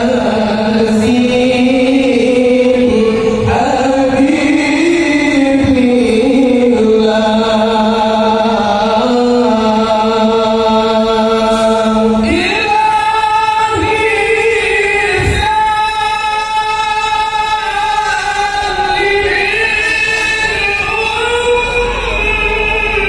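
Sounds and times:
many voices singing devotional song: 0:00.0 - 0:23.0.

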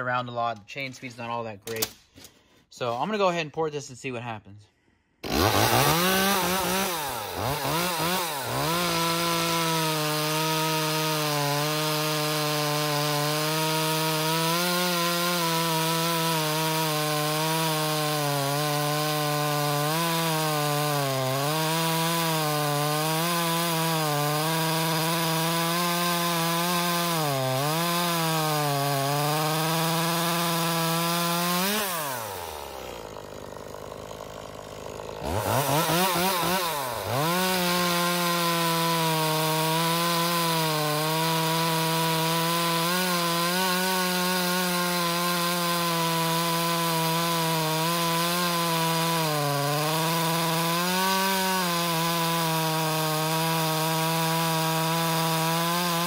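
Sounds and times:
chainsaw cutting a log: 0:05.2 - 0:56.0.

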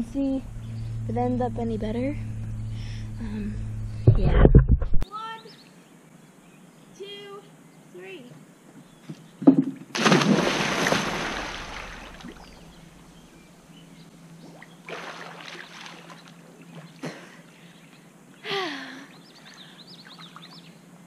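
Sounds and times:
loud splash into pool: 0:09.9 - 0:12.5, 0:14.9 - 0:16.2
water sloshing: 0:09.9 - 0:13.3, 0:14.4 - 0:17.7
woman gasping breath: 0:18.4 - 0:19.8.

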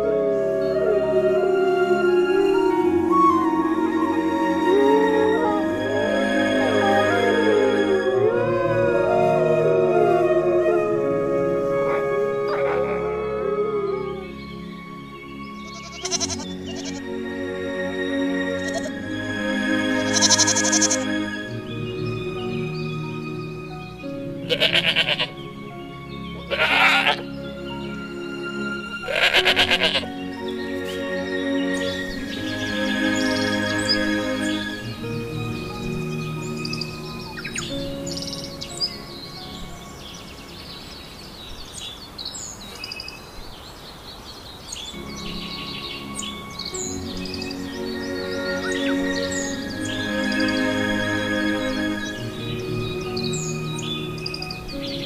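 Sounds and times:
background music: 0:00.0 - 0:42.5, 0:44.8 - 0:55.0
small birds chirping: 0:11.9 - 0:17.1, 0:18.4 - 0:19.1, 0:20.0 - 0:28.2, 0:29.1 - 0:55.0
sheep bleating: 0:15.7 - 0:17.0, 0:24.5 - 0:25.3, 0:26.5 - 0:27.2, 0:29.1 - 0:30.1.

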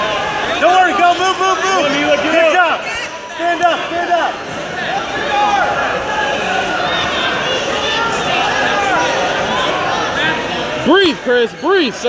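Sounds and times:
crowd shouting and talking: 0:00.0 - 0:12.0.

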